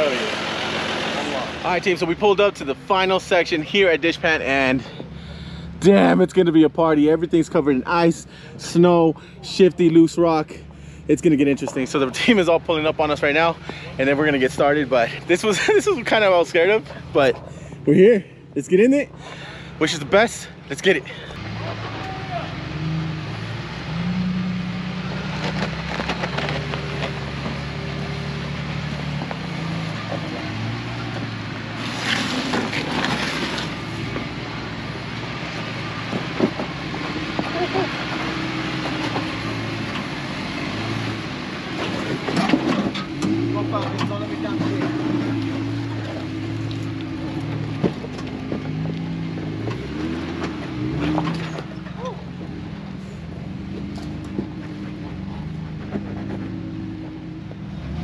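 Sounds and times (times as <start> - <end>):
engine running at low revs: 0.0 - 58.0.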